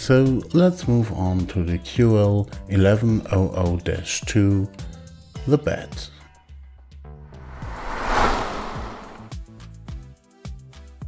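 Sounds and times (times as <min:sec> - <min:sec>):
whoosh sound effect: 0:07.3 - 0:09.3.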